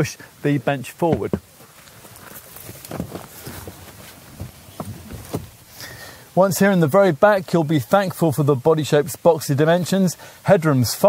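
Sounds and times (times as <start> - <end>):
shuffling: 1.0 - 5.9
light knocks: 1.1 - 1.5.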